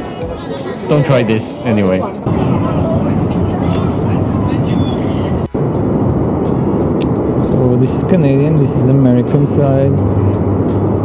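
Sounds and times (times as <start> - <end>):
wind buffeting microphone: 2.2 - 11.0.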